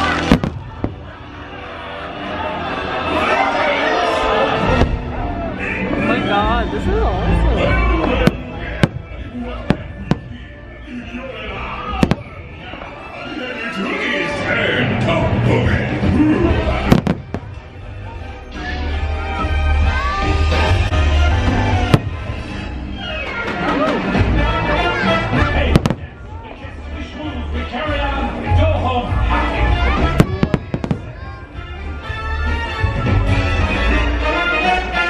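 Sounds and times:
sharp firework bangs: 0.0s - 1.2s, 12.0s - 12.4s, 16.9s - 17.6s, 25.7s - 26.2s, 30.2s - 31.1s
voices: 0.0s - 33.3s
music: 0.0s - 35.0s.

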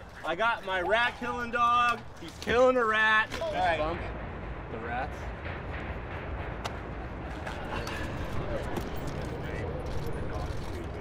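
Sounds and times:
low city rumble: 0.0s - 11.0s.

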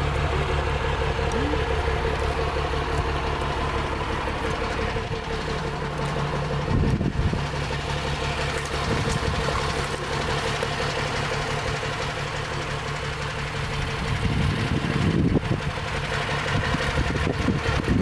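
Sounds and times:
fire truck engine idling: 0.0s - 18.0s.

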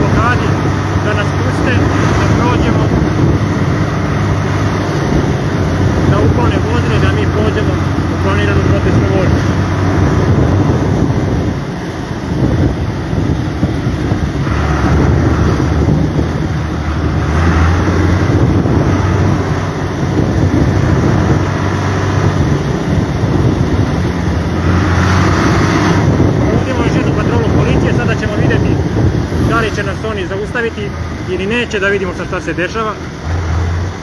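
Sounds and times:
wind noise on microphone: 0.0s - 31.7s
tractor diesel engine rumbling: 0.0s - 34.0s.

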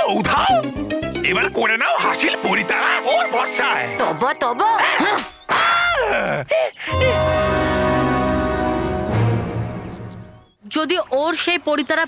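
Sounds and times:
person crying out: 4.8s - 7.4s.

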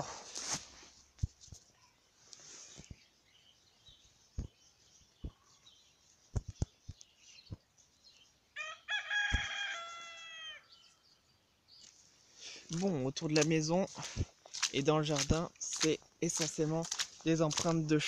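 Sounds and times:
rooster crowing: 8.6s - 10.7s.

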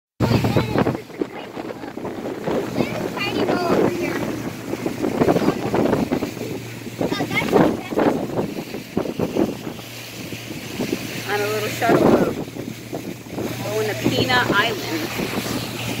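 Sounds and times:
boat motor humming: 0.2s - 16.0s
wind buffeting microphone: 0.2s - 16.0s.

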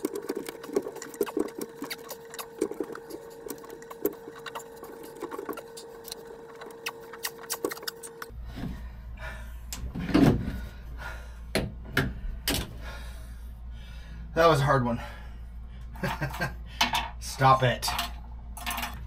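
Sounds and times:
faint hum: 0.0s - 19.0s.

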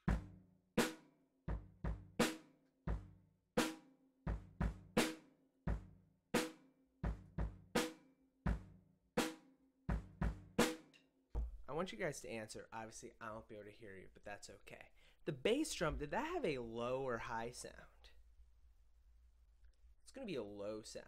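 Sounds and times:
bass drum: 0.0s - 0.4s, 1.5s - 2.3s, 4.3s - 5.1s, 5.7s - 5.9s, 7.0s - 7.8s, 8.5s - 8.8s, 9.9s - 10.8s, 11.4s - 11.8s
snare drum: 9.2s - 11.7s.

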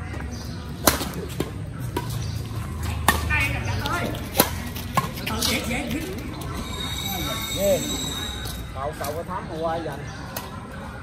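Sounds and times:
rackets smacking shuttlecock: 0.8s - 6.3s.

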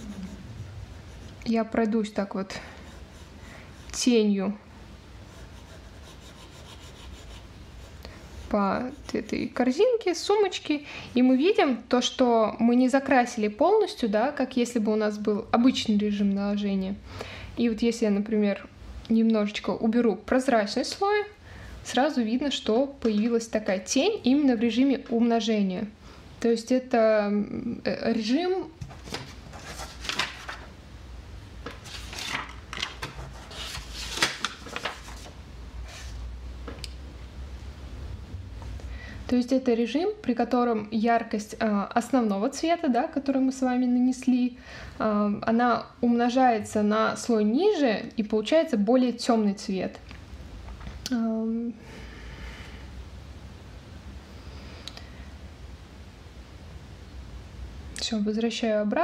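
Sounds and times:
stylus rubbing on glass screen: 0.0s - 1.8s, 5.2s - 9.6s.

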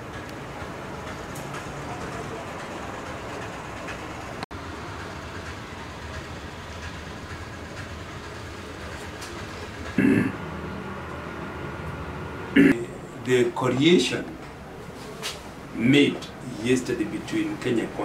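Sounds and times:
office room background noise: 0.0s - 18.0s
man clearing his throat: 10.0s - 10.4s, 12.6s - 13.0s.

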